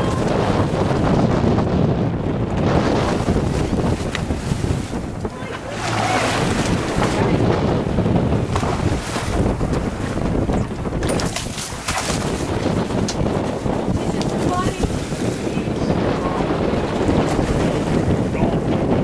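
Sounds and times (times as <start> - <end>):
water rushing along boat: 0.0 - 19.0
wind buffeting microphone: 0.0 - 19.0.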